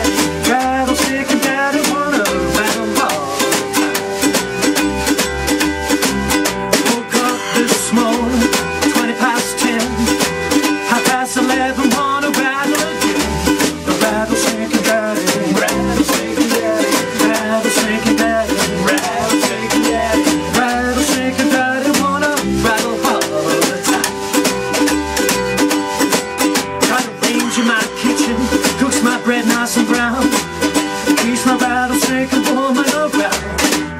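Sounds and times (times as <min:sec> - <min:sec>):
harmonica melody: 0:00.0 - 0:33.4
snare drum: 0:00.0 - 0:33.9
strummed ukulele: 0:00.0 - 0:33.9
upright bass: 0:00.0 - 0:33.9.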